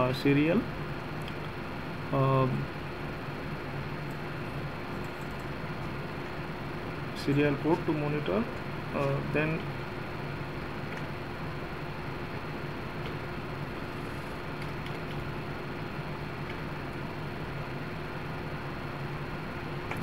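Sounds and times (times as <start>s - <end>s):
fan running: 0.0s - 20.0s.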